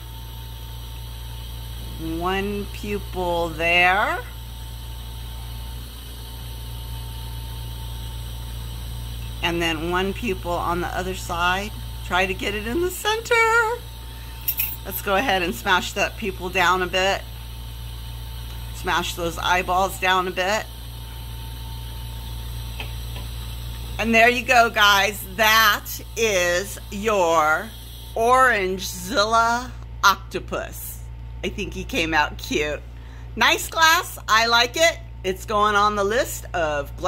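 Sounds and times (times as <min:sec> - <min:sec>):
torch flame hissing: 0:00.0 - 0:29.7
constant low hum: 0:00.0 - 0:37.0
faint steady whine: 0:00.0 - 0:37.0.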